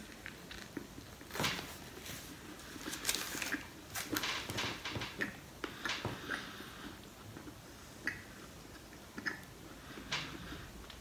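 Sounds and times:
person chewing with wet mouth clicks: 0:07.3 - 0:09.6.

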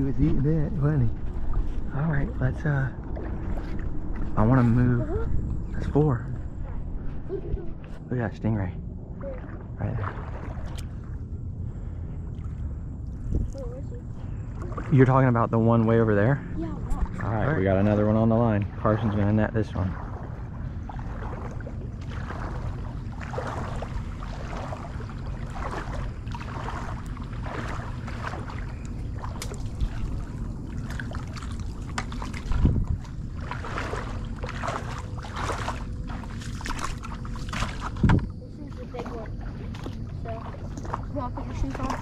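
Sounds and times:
wading through shallow water: 0:00.0 - 0:42.0
wind rumble on microphone: 0:00.0 - 0:42.0.

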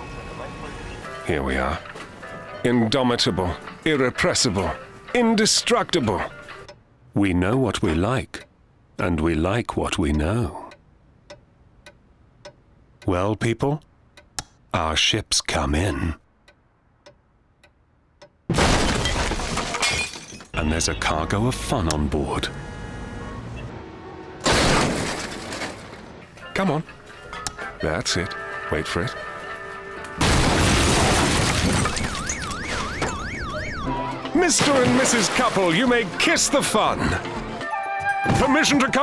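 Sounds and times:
clock ticking: 0:05.5 - 0:08.6, 0:09.4 - 0:14.7, 0:15.8 - 0:18.5
walls crashing with shattering debris: 0:18.5 - 0:20.6, 0:24.4 - 0:26.2, 0:30.2 - 0:33.1, 0:34.4 - 0:36.3
electronic alarm wailing: 0:31.8 - 0:34.4.

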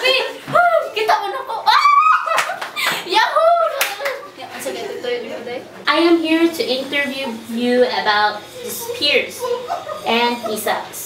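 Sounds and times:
woman's excited voice: 0:00.0 - 0:02.3, 0:02.9 - 0:04.1
hand claps: 0:02.3 - 0:03.0, 0:03.8 - 0:04.2.

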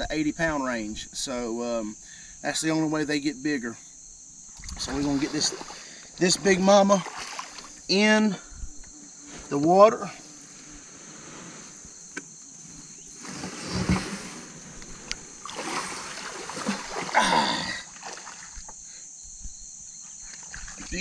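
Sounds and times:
river water splashing: 0:04.6 - 0:07.9, 0:13.1 - 0:18.7
dull thump: 0:13.1 - 0:17.2.

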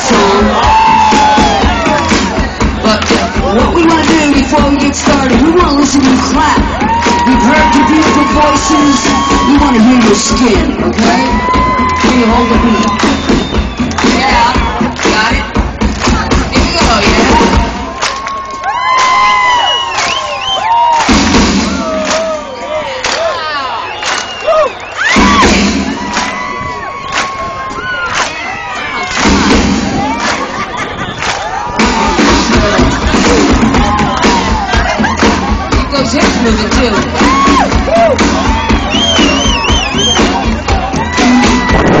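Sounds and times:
crowd cheering and whooping: 0:00.0 - 0:05.3, 0:06.0 - 0:15.1, 0:16.0 - 0:42.0
audience clapping along: 0:00.0 - 0:25.2, 0:26.0 - 0:42.0
live rock band playing: 0:31.8 - 0:42.0.

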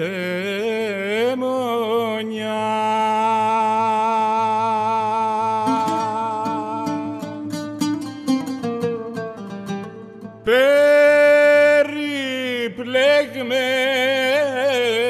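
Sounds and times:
oud plucking melody: 0:05.6 - 0:11.0.

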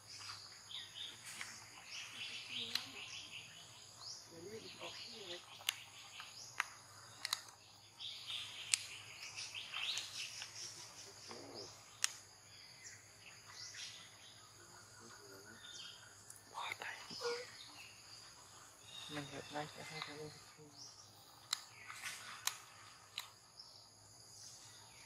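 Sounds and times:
birds chirping: 0:00.0 - 0:25.0
sharp clicks: 0:02.6 - 0:03.1, 0:05.4 - 0:07.6, 0:08.4 - 0:09.0, 0:11.9 - 0:12.2, 0:21.4 - 0:23.4.

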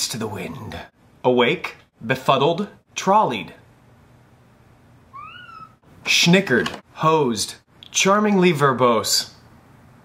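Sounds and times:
cat meowing: 0:05.1 - 0:05.8.

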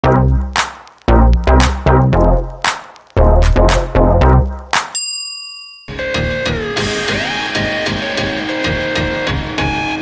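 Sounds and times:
electronic jingle with bass beats: 0:00.0 - 0:04.8
bright bell ding: 0:04.9 - 0:06.3.

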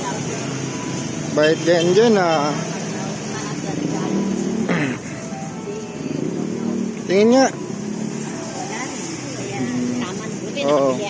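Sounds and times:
faint voices: 0:00.0 - 0:11.0
traffic hum: 0:00.0 - 0:11.0.

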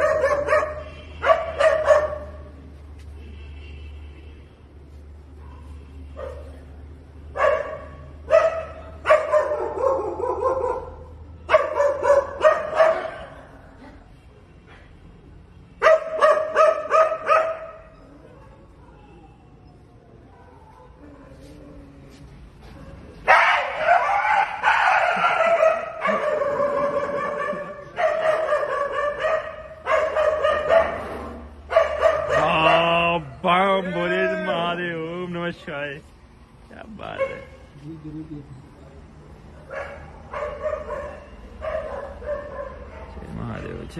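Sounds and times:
dog barking and yelping: 0:00.0 - 0:02.4, 0:07.4 - 0:13.5, 0:15.8 - 0:19.0, 0:23.3 - 0:33.1, 0:39.6 - 0:43.2.

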